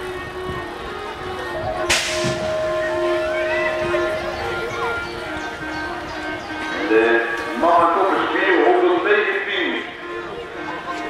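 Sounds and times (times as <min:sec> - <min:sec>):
start gate dropping slap: 0:01.9 - 0:02.5
electronic start tone: 0:02.2 - 0:06.7.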